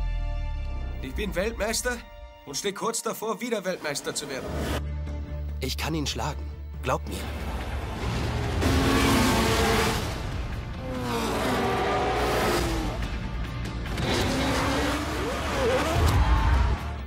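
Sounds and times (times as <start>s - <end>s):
trailer music: 0.0s - 17.0s.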